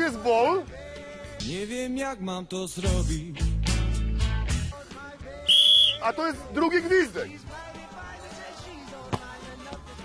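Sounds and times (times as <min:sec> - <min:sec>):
whistle blast: 0:05.5 - 0:06.2.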